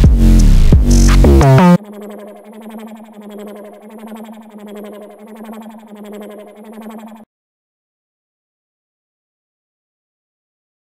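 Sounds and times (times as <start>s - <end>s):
pulsing synthesizer melody: 0.0s - 7.2s.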